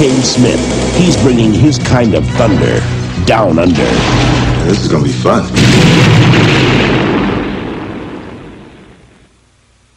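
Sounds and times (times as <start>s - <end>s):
explosion rumble: 3.7s - 4.8s, 5.5s - 9.3s.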